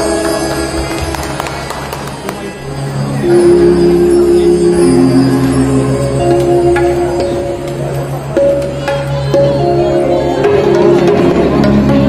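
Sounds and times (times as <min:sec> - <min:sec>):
harmonium held notes: 0:00.0 - 0:12.0.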